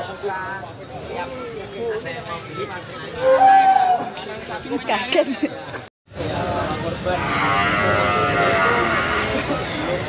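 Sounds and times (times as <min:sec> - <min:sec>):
crowd chatter: 0:00.0 - 0:10.0
young cow mooing: 0:07.2 - 0:09.5.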